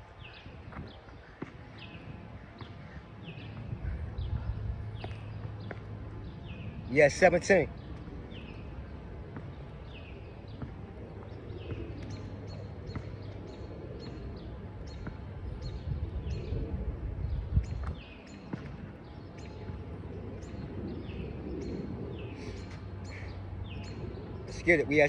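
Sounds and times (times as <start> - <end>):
birds chirping: 0.0 - 25.0
low outdoor rumble: 0.0 - 25.0.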